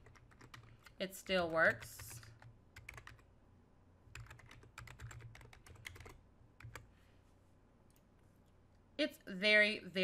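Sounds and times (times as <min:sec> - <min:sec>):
computer keyboard typing: 0:00.0 - 0:03.3, 0:04.1 - 0:06.9.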